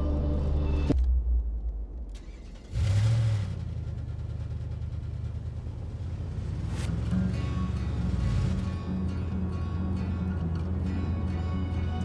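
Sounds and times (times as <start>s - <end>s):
car engine starting and running: 0.4s - 12.0s.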